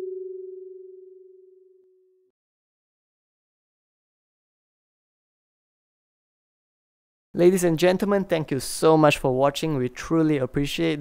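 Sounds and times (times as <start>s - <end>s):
kalimba tine ringing: 0.0s - 1.5s.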